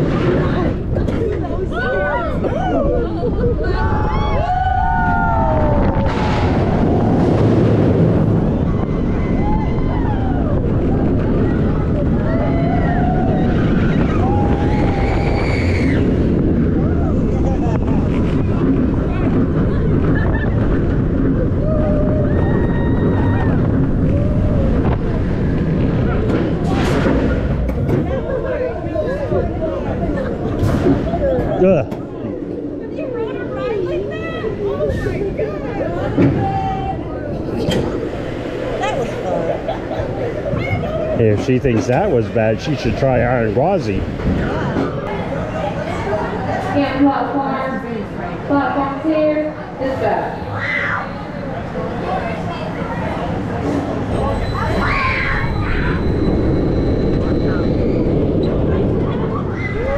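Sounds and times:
roller coaster track noise: 0.0s - 59.9s
rush of wind: 0.0s - 59.9s
riders screaming and yelling: 1.7s - 30.0s, 53.7s - 59.9s.

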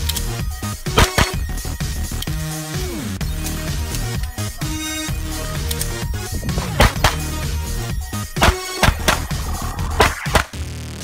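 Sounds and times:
electronic dance music: 0.3s - 10.6s
sharp bangs: 0.9s - 1.6s, 6.2s - 10.6s.

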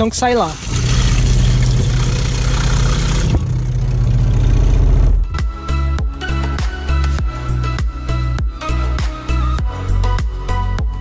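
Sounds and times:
electric water pump humming: 0.2s - 5.2s
water splashing into steel sink: 0.6s - 3.3s.

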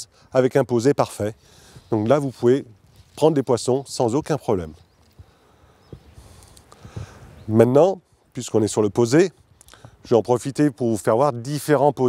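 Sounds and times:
light hiss: 5.0s - 7.5s.

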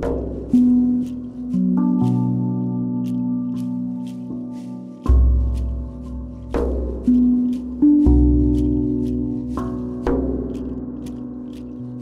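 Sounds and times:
soft drip-like clicks: 0.0s - 12.0s
steel tongue drum notes: 0.0s - 12.0s.

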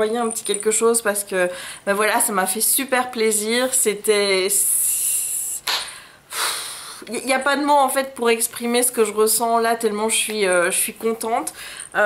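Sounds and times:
woman breathing: 1.5s - 1.9s, 5.8s - 7.0s, 11.6s - 12.0s.

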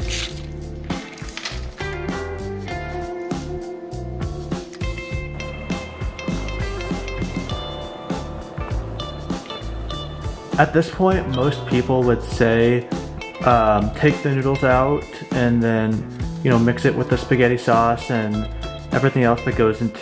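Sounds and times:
background music with bass line: 0.0s - 20.0s.

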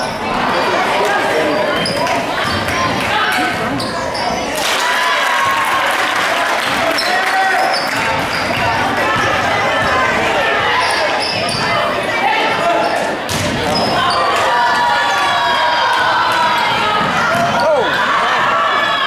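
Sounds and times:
hubbub of voices: 0.0s - 19.0s
sneakers squeaking: 1.4s - 4.6s, 6.9s - 14.4s, 17.0s - 18.0s.

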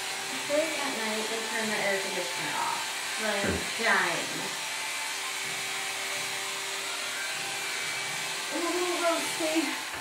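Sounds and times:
small electric motor whirring: 0.0s - 10.0s.

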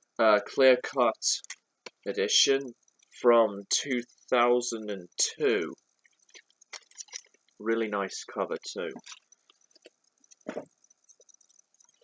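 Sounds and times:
vinyl record sleeves rustling: 6.4s - 8.0s.

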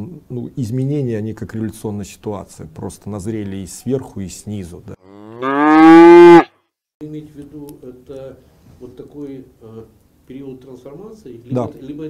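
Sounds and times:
cow mooing: 5.0s - 6.5s.

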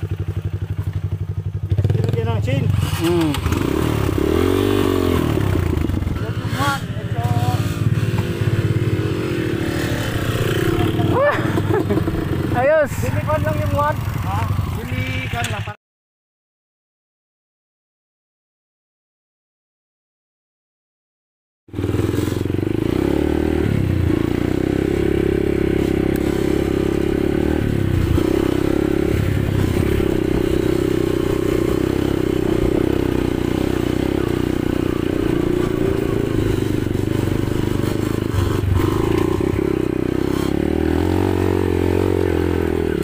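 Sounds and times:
dirt bike engine revving: 0.0s - 15.7s, 21.7s - 43.0s.

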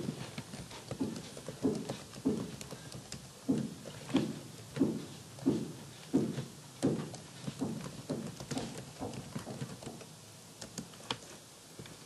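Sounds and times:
computer keyboard typing: 0.0s - 4.1s, 6.8s - 11.3s.

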